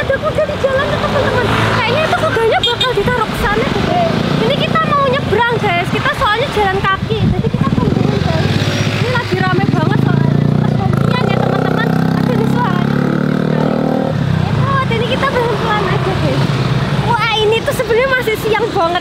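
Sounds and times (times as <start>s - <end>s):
motorbike engine running: 2.9s - 16.4s.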